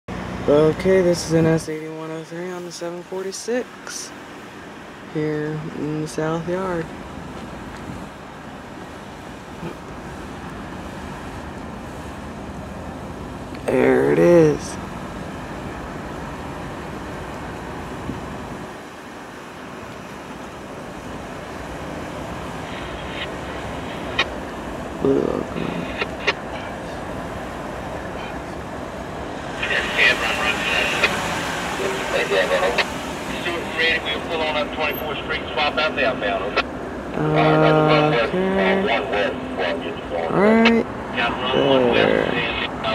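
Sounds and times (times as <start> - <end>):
diesel locomotives rumbling: 0.1 - 42.9
voices: 0.4 - 4.2, 5.1 - 7.0, 13.5 - 15.7, 22.4 - 42.9.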